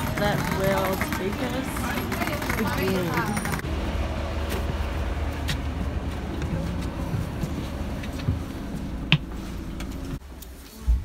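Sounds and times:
bus engine idling: 0.0s - 10.2s
footsteps on bus steps: 4.4s - 10.2s.

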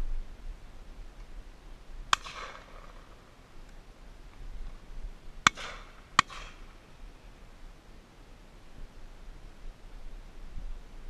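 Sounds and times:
shotgun shots with echo: 2.1s - 3.2s, 5.4s - 6.8s.

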